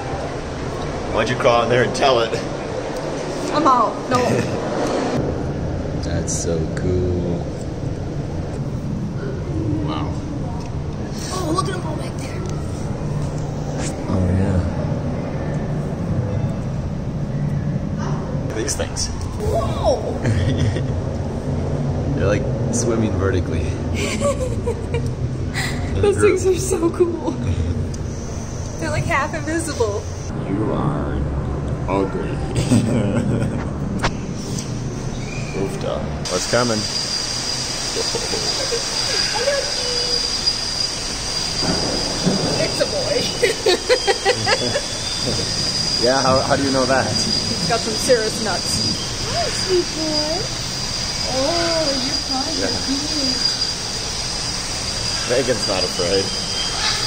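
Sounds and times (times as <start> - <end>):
steady low hum: 0.0 - 57.0
high-pitched whine: 20.8 - 57.0
background hiss: 36.2 - 57.0
indistinct voices: 37.8 - 56.9.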